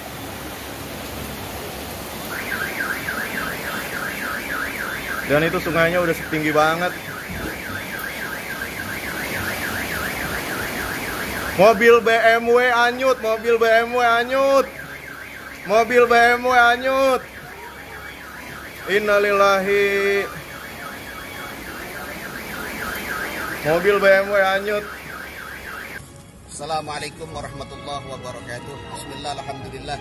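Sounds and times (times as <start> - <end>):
floodwater rushing: 0.0 - 26.2
car alarm warbling: 2.2 - 26.0.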